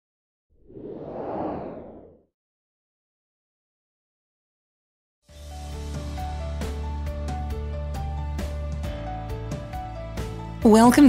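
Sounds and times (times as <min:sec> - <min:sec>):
whoosh sound effect: 0:00.6 - 0:02.2.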